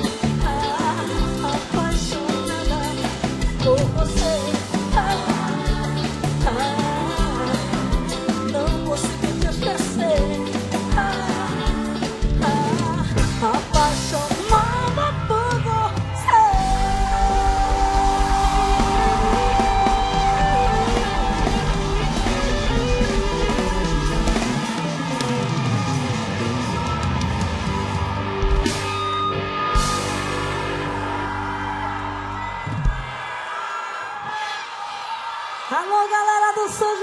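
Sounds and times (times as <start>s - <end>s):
electric guitar: 0.0s - 33.1s
live pop band playing: 0.0s - 33.2s
drum kit: 0.0s - 33.3s.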